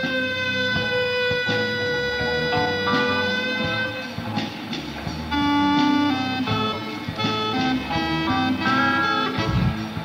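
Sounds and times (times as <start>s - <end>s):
loud held note: 0.0s - 4.2s
live rock band playing: 0.0s - 10.0s.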